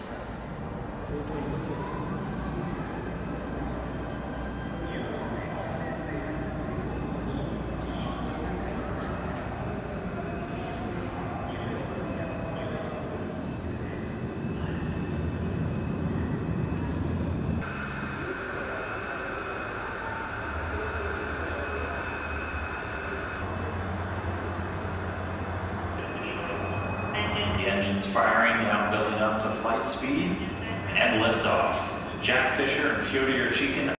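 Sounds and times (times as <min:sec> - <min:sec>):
distant voices: 0:00.0 - 0:33.9
faint hum: 0:00.0 - 0:33.9
hall rumble: 0:00.0 - 0:33.9.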